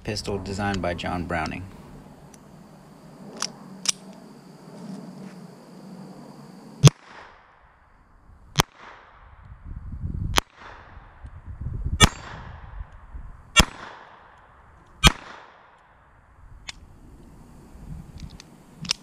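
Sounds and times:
pistol shots: 13.6 - 14.4, 15.0 - 15.8.

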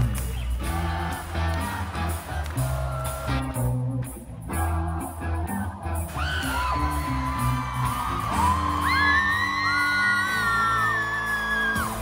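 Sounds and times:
live pop band music: 0.0 - 12.0
steady low bass: 0.0 - 12.0.

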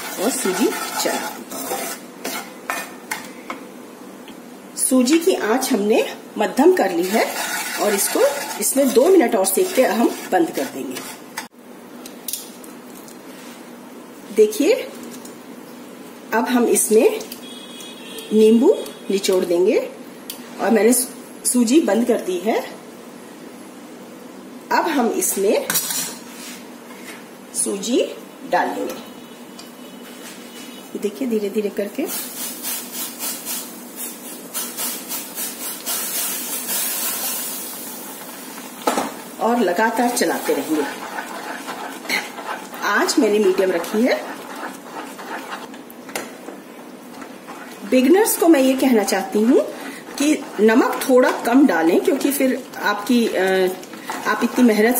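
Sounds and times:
semolina hissing in boiling water: 0.0 - 2.5, 6.6 - 11.4, 32.0 - 46.0, 46.6 - 54.9
spoon scraping pan: 0.0 - 3.3, 6.8 - 11.5, 36.1 - 54.9
wooden spoon stirring in pan: 0.0 - 3.3, 6.6 - 11.5, 32.3 - 54.9.

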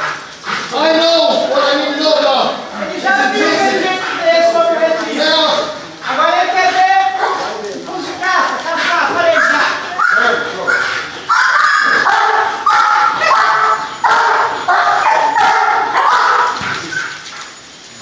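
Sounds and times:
dog whining and yipping: 9.4 - 17.3.

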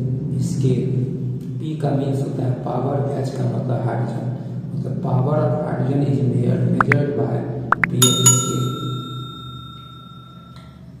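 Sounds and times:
low background hum: 0.0 - 11.0
bell ding ringing: 7.8 - 10.8.

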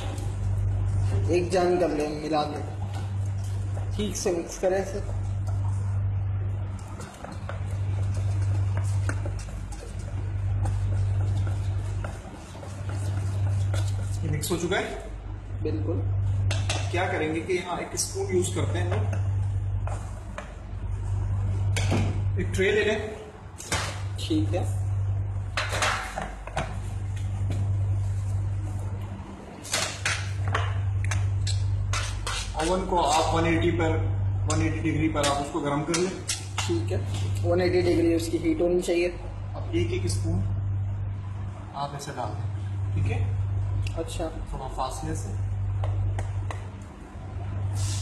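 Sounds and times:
steady low hum: 0.0 - 48.0
short hiss: 47.7 - 48.0.

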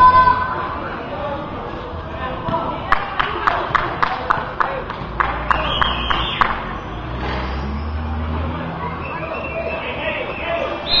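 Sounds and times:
vehicle engine humming: 0.7 - 11.0.

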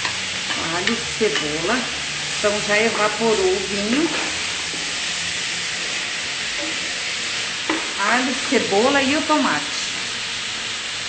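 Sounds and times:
garlic and onion sizzling in oil: 0.0 - 11.0.

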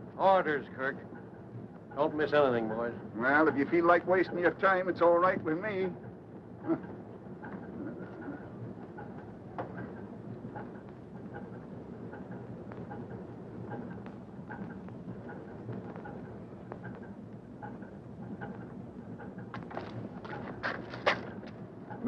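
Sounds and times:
steady background noise: 0.0 - 22.0
faint ticks and shuffling: 0.2 - 22.0
sharp knocks and clatter: 6.0 - 22.0.

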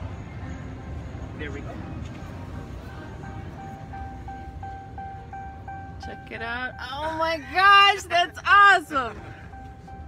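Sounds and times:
car door warning chime beeping: 3.3 - 8.3, 9.1 - 10.0.

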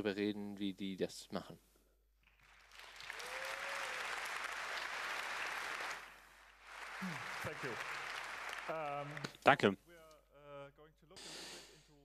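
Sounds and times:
audience applauding: 2.3 - 9.4.

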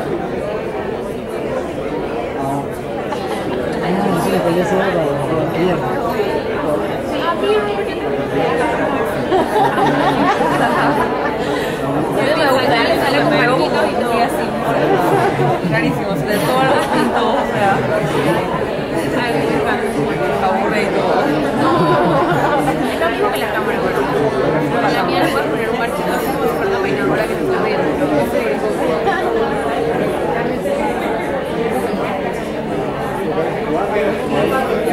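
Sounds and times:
many people talking: 0.0 - 34.9.

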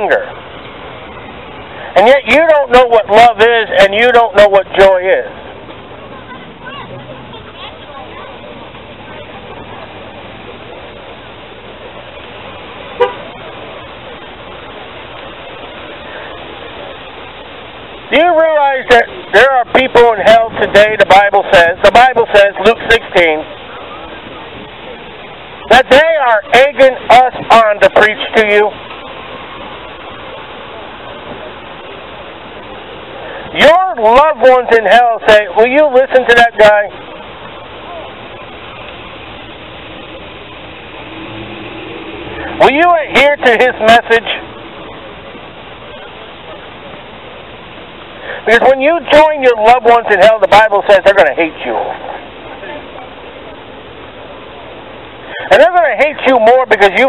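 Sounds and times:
faint voices: 0.0 - 57.0
outdoor background noise: 0.0 - 57.0
street traffic noise: 0.0 - 57.0
car horn toot: 13.0 - 13.4.

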